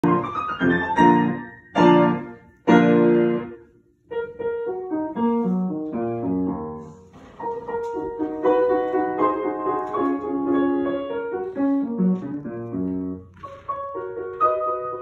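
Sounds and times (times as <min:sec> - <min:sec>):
piano chords and notes: 0:00.0 - 0:15.0.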